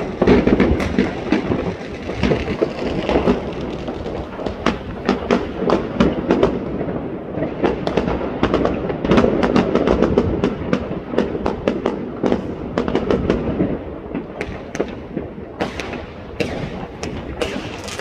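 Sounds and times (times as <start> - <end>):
continuous rumble: 0.0 - 9.1
fireworks bangs and cracks: 0.0 - 18.0.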